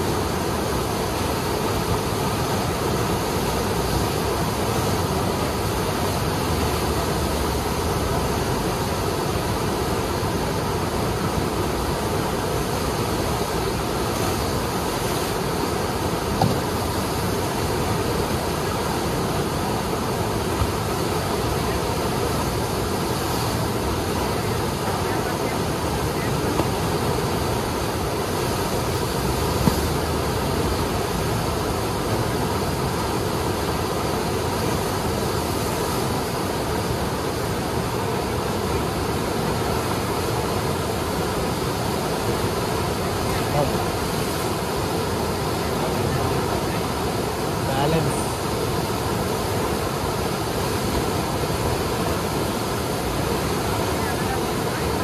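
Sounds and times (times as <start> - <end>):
white water rushing: 0.0 - 55.0.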